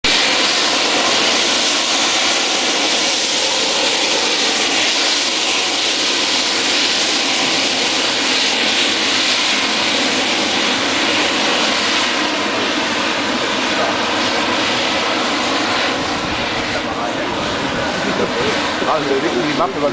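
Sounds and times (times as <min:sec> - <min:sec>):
gas rushing from vent pipe: 0:00.0 - 0:19.9.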